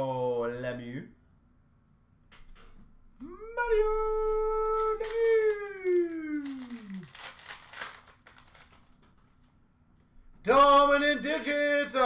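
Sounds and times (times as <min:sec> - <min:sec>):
person shouting: 0:03.2 - 0:07.2
trading cards rustling: 0:04.3 - 0:09.6.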